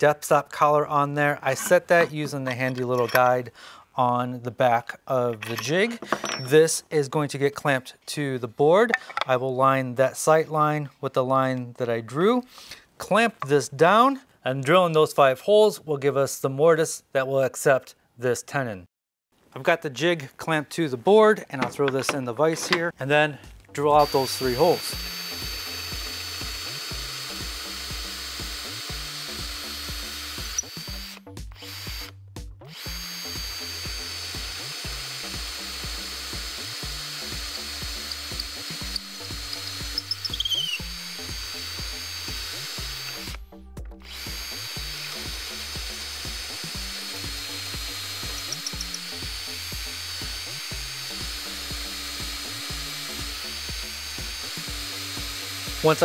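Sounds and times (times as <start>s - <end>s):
cordless drill boring into wood: 23.9s - 43.4s, 44.0s - 56.0s.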